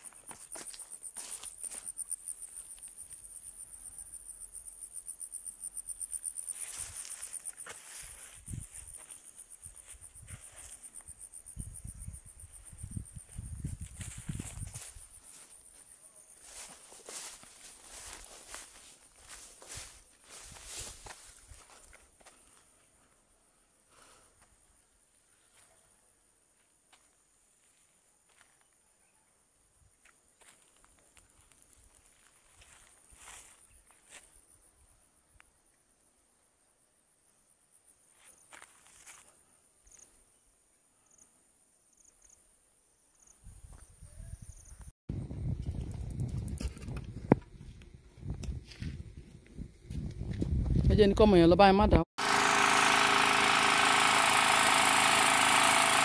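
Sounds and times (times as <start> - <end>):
footsteps on rough ground: 0.0 - 3.3, 6.4 - 11.2, 12.6 - 22.8, 30.0 - 34.4, 38.2 - 39.4, 45.3 - 50.9
insects chirping: 0.0 - 28.8, 29.6 - 45.5
soft footsteps: 6.5 - 11.0, 13.3 - 22.6.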